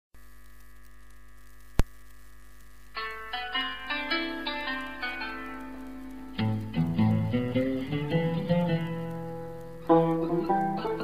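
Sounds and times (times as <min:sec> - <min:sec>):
electrical mains hum: 0:00.2 - 0:11.0.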